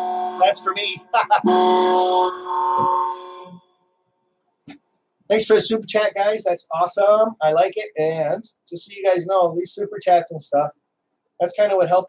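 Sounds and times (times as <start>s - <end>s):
alert chime horn chord: 0.0s - 3.6s.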